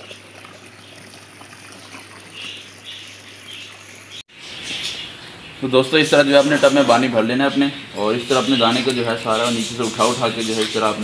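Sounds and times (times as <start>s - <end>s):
hose water splashing into tub: 0.0s - 4.2s
bird calls: 1.7s - 11.0s.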